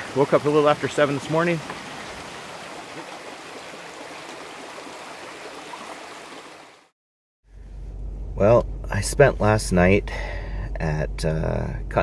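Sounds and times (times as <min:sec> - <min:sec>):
running water rushing: 0:00.0 - 0:06.9
low vehicle cabin hum: 0:07.5 - 0:12.0.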